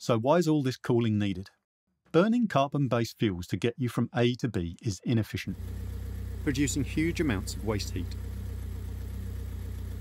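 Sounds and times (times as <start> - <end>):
car engine idling: 5.5 - 10.0.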